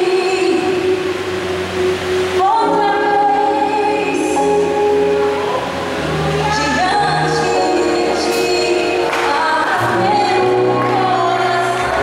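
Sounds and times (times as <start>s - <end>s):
woman singing gospel: 0.0s - 1.3s, 2.4s - 5.1s, 6.4s - 12.0s
sustained instrumental backing: 0.0s - 12.0s.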